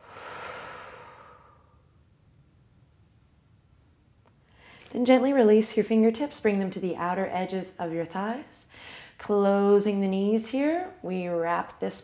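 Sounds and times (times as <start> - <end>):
woman breathing out: 0.0 - 2.0.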